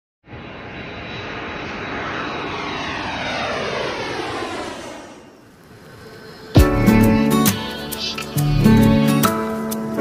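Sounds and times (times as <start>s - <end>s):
engine rushing past: 0.4s - 7.4s.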